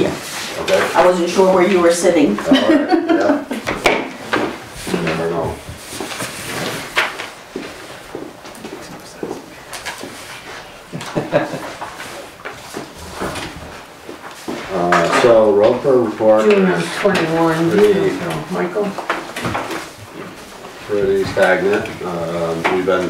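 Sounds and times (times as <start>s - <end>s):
paper rustling and shuffling: 0.0s - 1.9s, 4.2s - 23.0s
person speaking: 14.6s - 19.1s.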